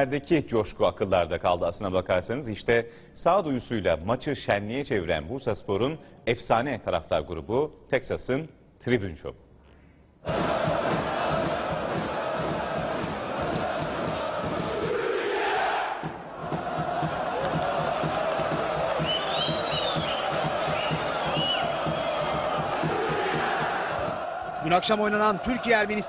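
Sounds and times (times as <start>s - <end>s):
stadium crowd chanting: 10.2s - 26.0s.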